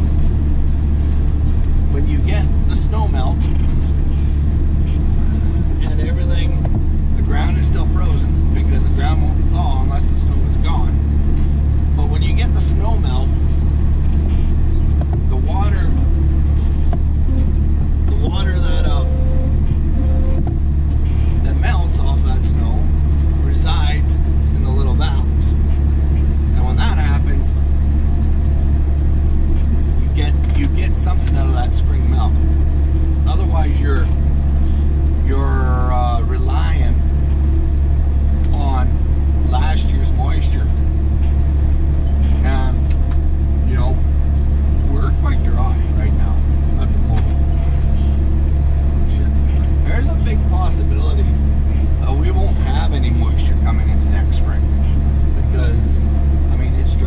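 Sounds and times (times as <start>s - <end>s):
tractor engine drone: 0.0s - 57.0s.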